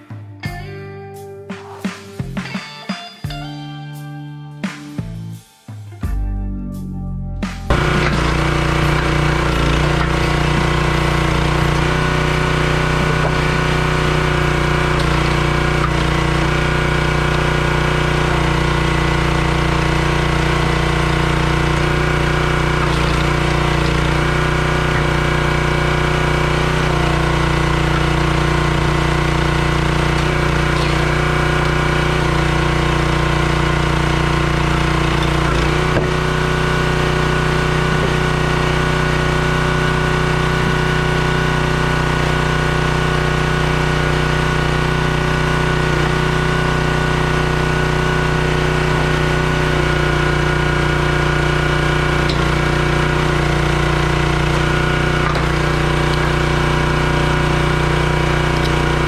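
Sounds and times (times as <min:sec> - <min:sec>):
small gas engine running: 0:07.7 - 0:59.0.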